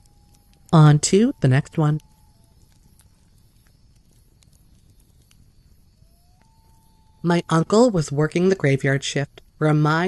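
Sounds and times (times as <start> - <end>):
faint soft ticks: 0.0 - 7.3.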